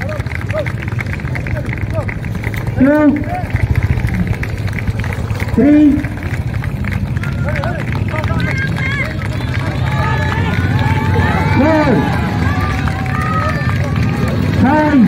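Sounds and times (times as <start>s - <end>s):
motorcycle engines humming: 0.0s - 15.0s
people talking and calling out: 0.0s - 15.0s.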